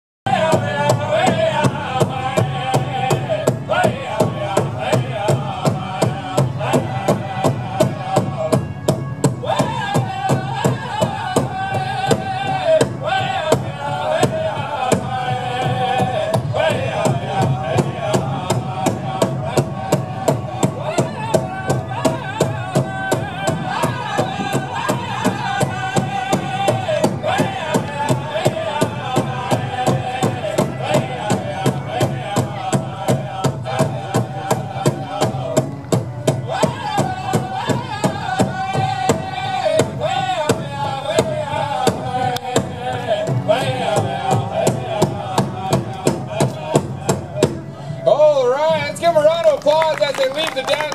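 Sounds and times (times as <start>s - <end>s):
fast steady drumbeat: 0.3s - 47.7s.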